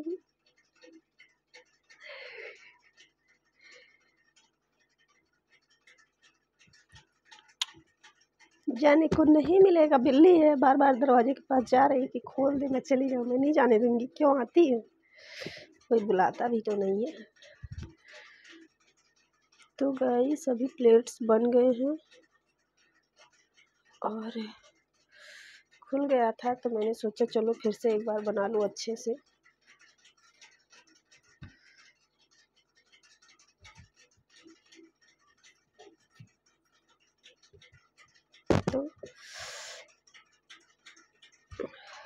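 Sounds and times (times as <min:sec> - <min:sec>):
light ticks and clicks: 0:00.0 - 0:42.0.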